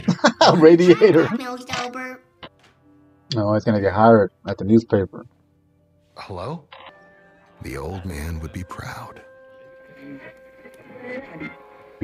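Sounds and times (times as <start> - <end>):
film dialogue: 0.0 - 12.0
quiet sustained music: 0.0 - 12.0.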